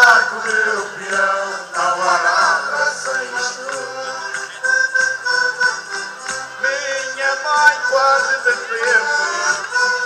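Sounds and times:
live folk music with singing: 0.0s - 10.0s.

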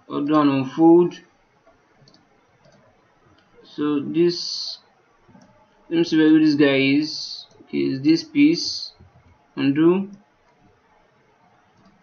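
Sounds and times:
computer mouse clicks: 1.6s - 3.5s, 5.3s - 5.6s, 11.7s - 12.0s.

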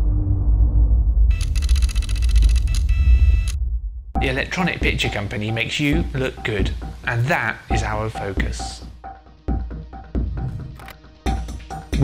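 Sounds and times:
deep bass rumble: 0.0s - 5.0s.

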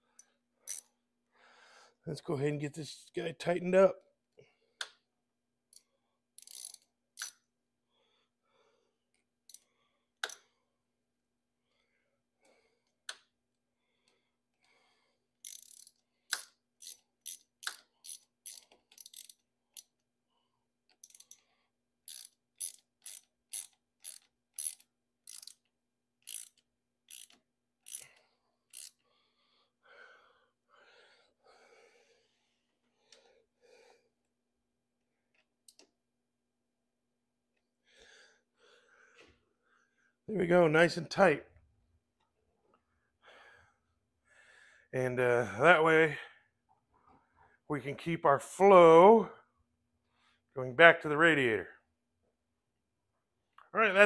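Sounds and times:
ratchet wrench clicking: 0.2s - 0.9s, 6.4s - 7.4s, 15.4s - 19.9s, 21.0s - 21.4s, 22.1s - 29.0s.

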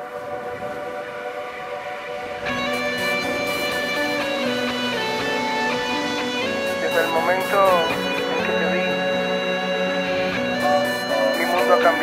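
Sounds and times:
held horn-like chord: 0.0s - 12.0s.

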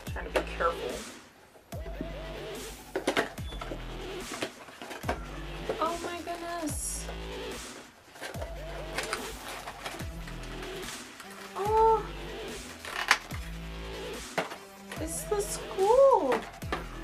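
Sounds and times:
background music with held tones: 0.0s - 17.0s
plastic bag crinkling: 7.8s - 13.4s.

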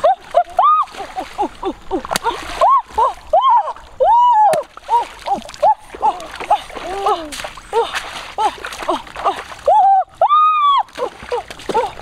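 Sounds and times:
splashing in shallow water: 0.0s - 12.0s
person crying out excitedly: 0.4s - 2.0s, 2.6s - 12.0s.

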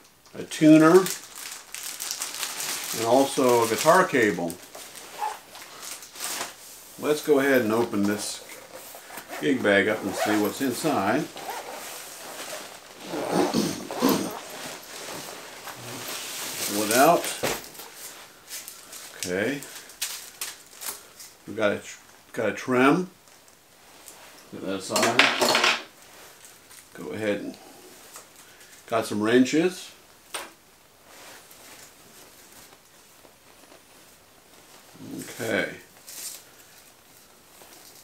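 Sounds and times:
fabric rustling: 0.9s - 21.2s, 30.9s - 38.0s
zipper unzipping: 5.2s - 5.4s, 8.5s - 10.5s, 11.3s - 16.6s
man coughing: 13.3s - 14.4s.

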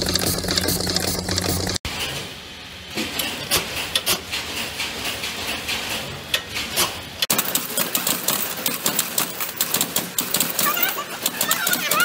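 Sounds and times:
metal-forming machine clattering: 0.0s - 2.3s.

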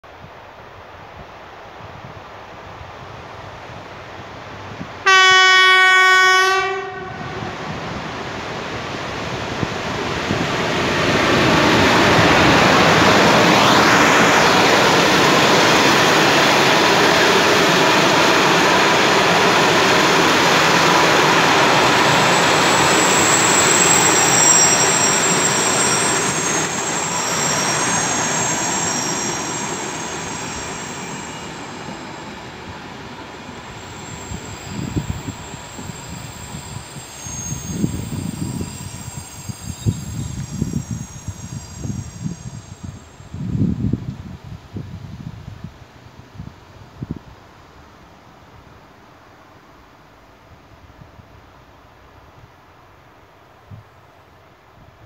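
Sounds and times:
train horn: 5.0s - 7.7s
high squealing tones: 11.8s - 32.5s, 33.6s - 43.3s.

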